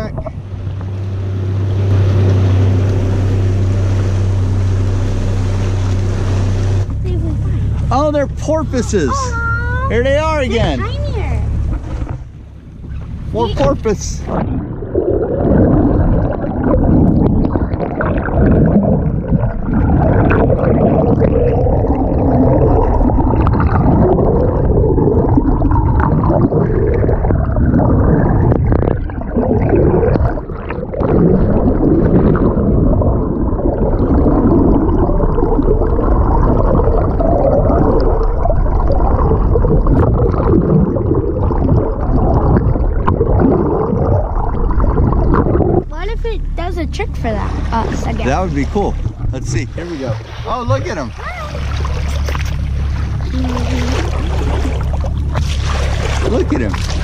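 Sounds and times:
muffled underwater rush and gurgle: 0:00.0 - 0:57.0
bubbling from splashes: 0:12.5 - 0:57.0.

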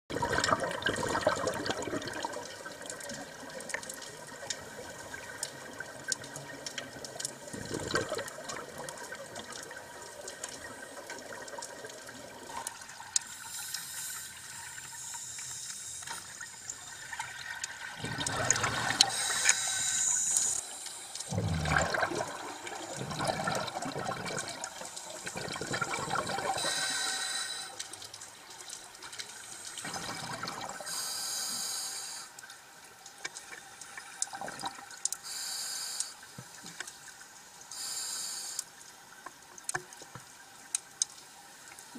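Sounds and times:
exhaled air bubbling underwater: 0:00.1 - 0:13.5, 0:16.3 - 0:31.3, 0:33.4 - 0:35.6
clicks and crackle underwater: 0:00.1 - 0:41.9.

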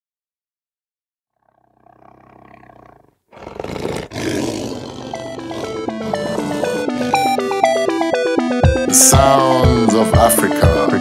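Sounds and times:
lion roaring: 0:01.4 - 0:07.9
lion growling: 0:01.4 - 0:08.1.

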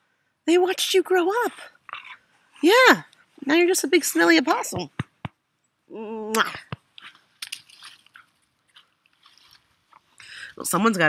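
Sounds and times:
faint crunches and rustles: 0:06.7 - 0:10.2.

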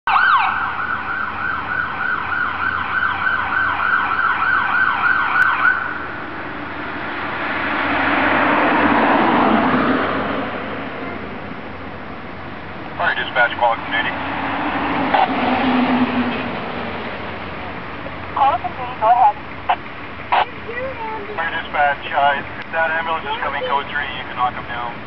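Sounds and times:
ambulance siren yelping: 0:00.1 - 0:06.3, 0:20.3 - 0:24.6
broad rush of noise: 0:00.2 - 0:25.0.

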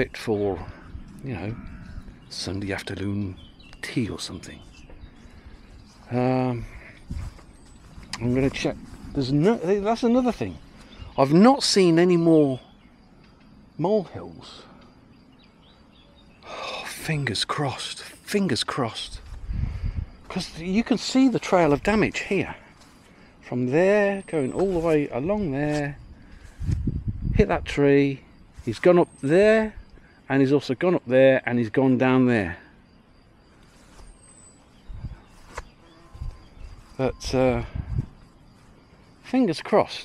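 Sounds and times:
man speaking: 0:00.0 - 0:01.7, 0:02.3 - 0:04.7, 0:06.0 - 0:06.9, 0:08.2 - 0:10.6, 0:11.2 - 0:12.6, 0:13.8 - 0:14.7, 0:16.4 - 0:19.3, 0:20.3 - 0:22.7, 0:23.4 - 0:26.0, 0:27.4 - 0:32.6, 0:36.9 - 0:37.8, 0:39.2 - 0:40.0
faint bird chirps: 0:00.0 - 0:40.0.

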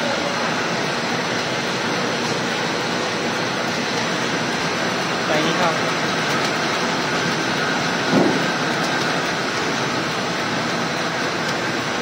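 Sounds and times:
grooving machine running: 0:00.0 - 0:12.0.

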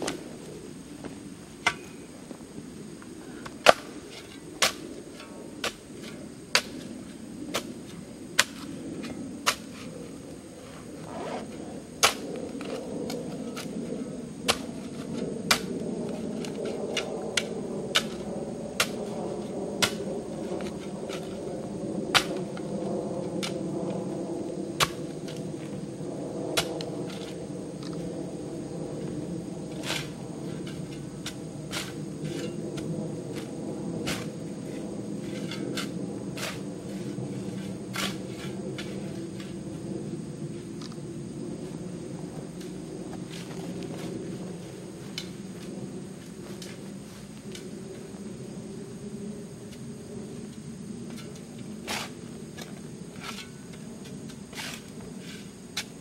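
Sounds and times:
steady low hum: 0:00.0 - 0:56.0
metal shovel scraping soil: 0:29.7 - 0:32.6, 0:33.3 - 0:39.6, 0:51.1 - 0:53.8, 0:54.4 - 0:56.0.

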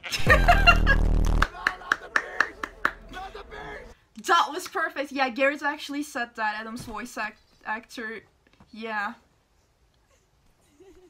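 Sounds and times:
loud deep boom: 0:00.2 - 0:01.4.

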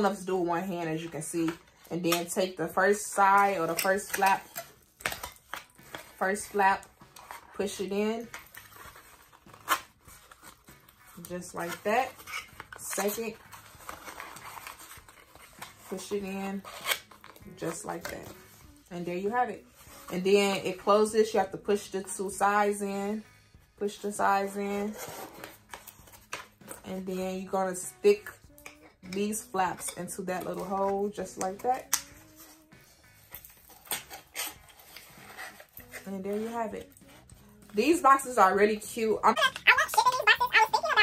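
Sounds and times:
cardboard rustling and scraping: 0:04.1 - 0:20.7, 0:30.3 - 0:38.1.

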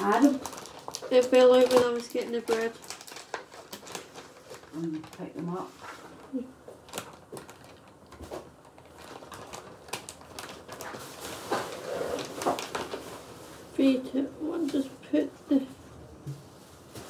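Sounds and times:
plastic packaging crinkling: 0:00.0 - 0:14.9.

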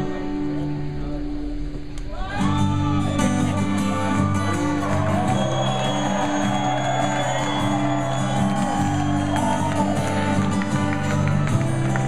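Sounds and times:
acoustic guitar chords: 0:00.0 - 0:12.0
crowd noise: 0:00.0 - 0:12.0.

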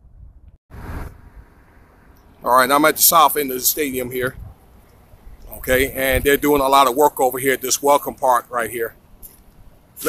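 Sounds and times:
outdoor low rumble: 0:00.0 - 0:02.5
brief rush of noise: 0:00.7 - 0:01.8.

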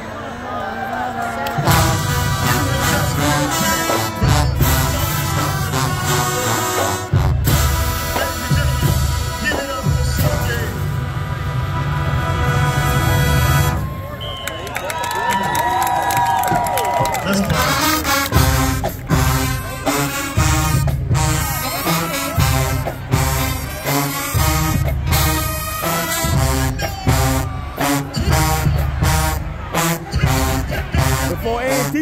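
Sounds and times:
marching band playing: 0:01.5 - 0:32.0
heavy low bass notes: 0:01.6 - 0:13.8.

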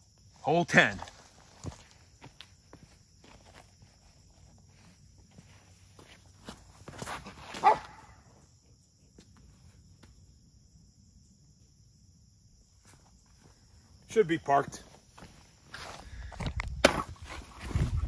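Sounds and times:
faint outdoor background: 0:00.0 - 0:18.0
footsteps on gravel: 0:00.9 - 0:07.9, 0:14.9 - 0:16.5.

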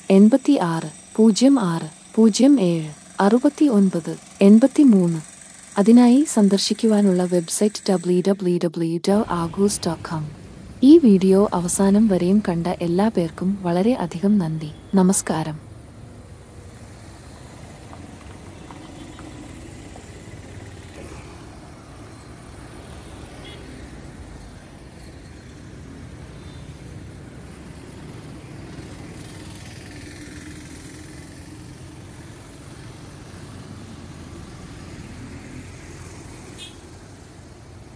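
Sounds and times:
road traffic hum: 0:00.0 - 0:37.9.

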